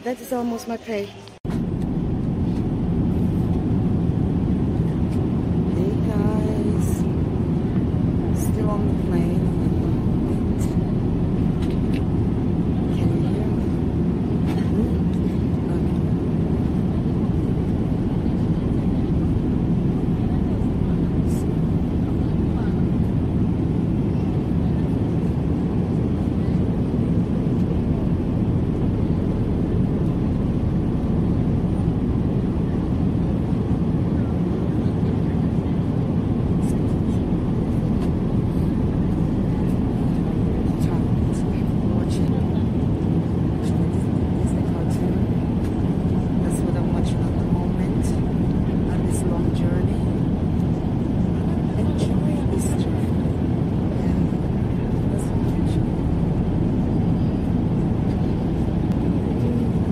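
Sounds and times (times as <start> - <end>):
airliner cabin rumble and hiss: 0.0 - 59.9.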